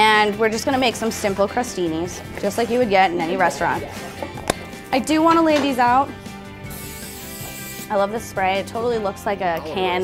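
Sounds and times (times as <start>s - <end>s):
aerosol spray hissing: 6.7s - 7.9s.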